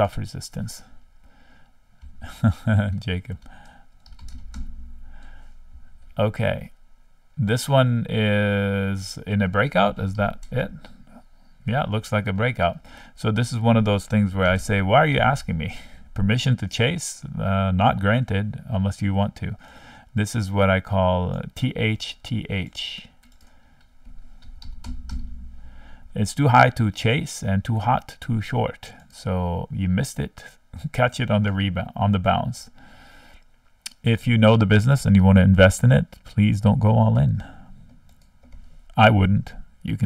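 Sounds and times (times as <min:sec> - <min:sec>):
low steady hum: 0:00.0 - 0:40.0
computer keyboard keystrokes: 0:04.0 - 0:04.8, 0:23.2 - 0:25.3.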